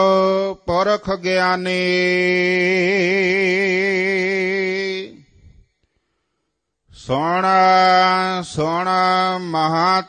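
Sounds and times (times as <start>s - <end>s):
man chanting a sung melody: 0.0s - 5.5s, 6.9s - 10.0s.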